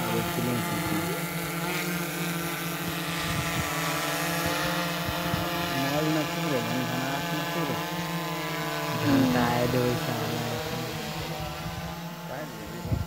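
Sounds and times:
drone propellers humming: 0.0 - 13.0.

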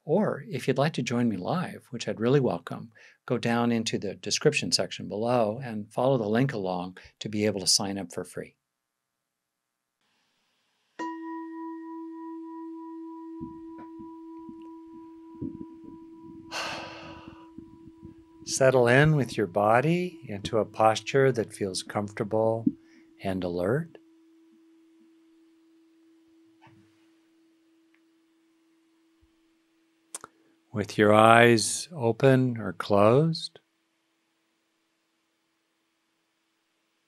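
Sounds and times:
faint steady hum: 0.0 - 37.0
singing bowl ringing: 11.0 - 29.2
soft low rustling: 13.4 - 23.9.

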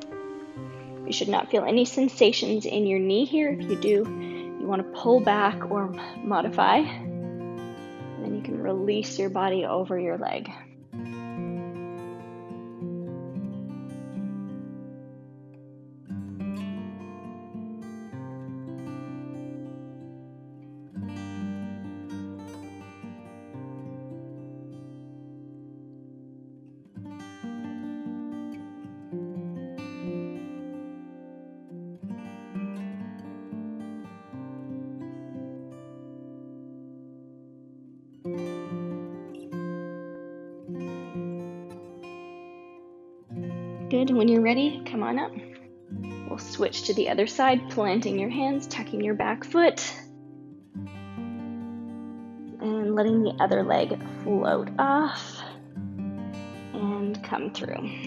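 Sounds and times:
acoustic guitar chords: 0.0 - 58.0.

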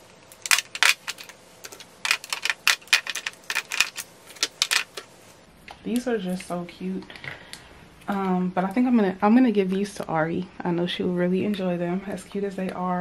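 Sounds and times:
plastic tubes clicking and clattering: 0.3 - 5.1.

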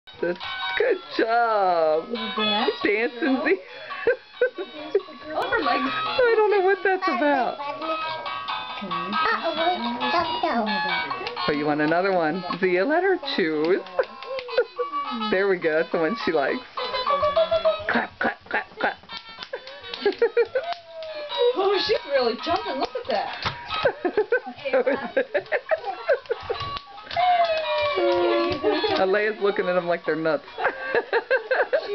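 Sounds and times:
toy music playing: 2.0 - 17.9, 19.2 - 24.2, 25.0 - 31.9
laughter: 13.8 - 15.0, 16.8 - 20.8, 23.8 - 26.7, 30.5 - 31.9.

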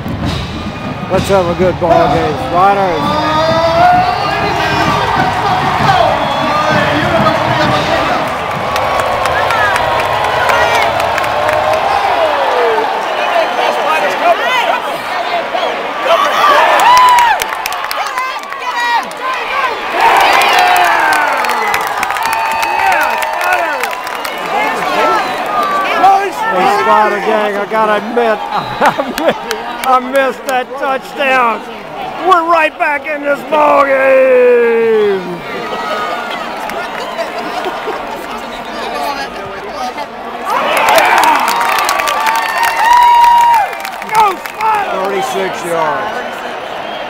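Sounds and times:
stadium crowd roaring: 0.0 - 47.0
fans shouting and whooping: 2.2 - 29.6, 40.3 - 47.0.

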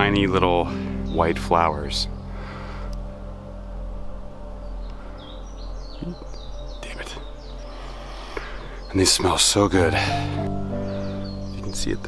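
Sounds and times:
songbird chirping: 0.0 - 12.0
steady low hum: 0.0 - 12.0.

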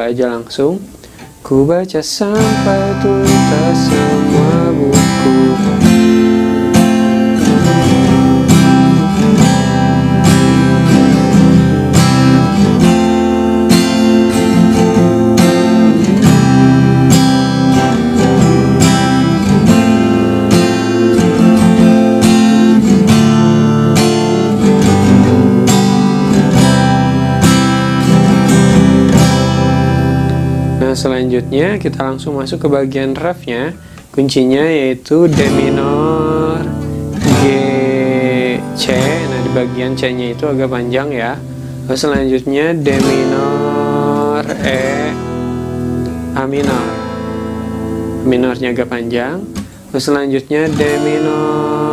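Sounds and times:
acoustic guitar strumming: 0.0 - 51.9.

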